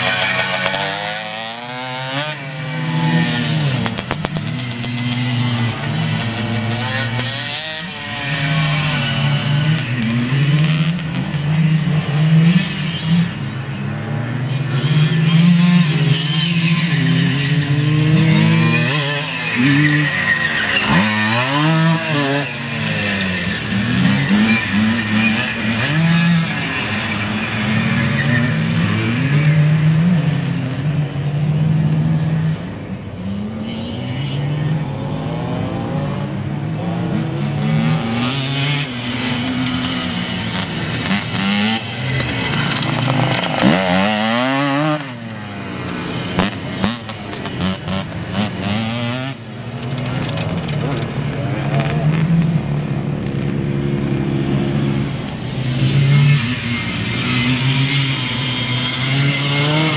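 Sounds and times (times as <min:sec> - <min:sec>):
motorcycle engines revving: 0:00.0 - 0:59.9
motorcycle passing close: 0:00.0 - 0:59.9.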